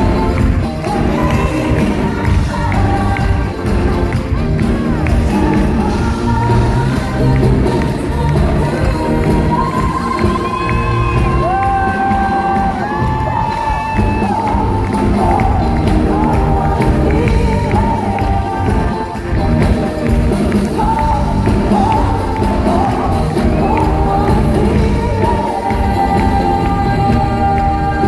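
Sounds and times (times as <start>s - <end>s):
live pop music with singing: 0.0s - 28.0s
audience cheering: 9.9s - 15.4s.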